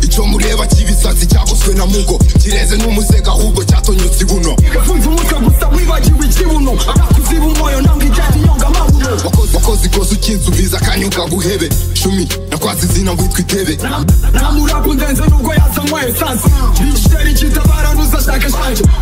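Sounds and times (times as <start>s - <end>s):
deep bass: 0.0s - 19.0s
rapping over a beat: 0.0s - 19.0s
kick drums: 0.8s - 1.5s, 2.2s - 2.5s, 5.5s - 6.3s, 7.0s - 7.3s, 7.9s - 9.5s, 15.3s - 15.8s, 16.5s - 17.8s.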